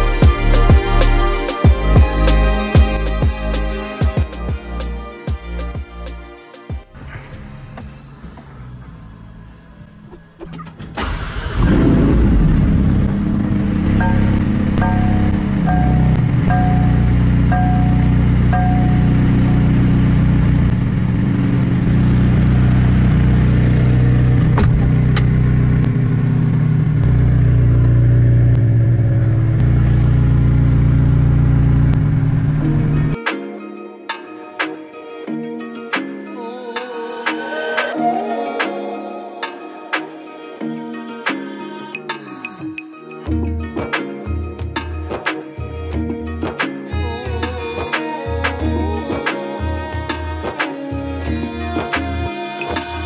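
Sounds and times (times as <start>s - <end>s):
car engine starting and idling: 7.0s - 33.2s
chime: 14.0s - 19.4s.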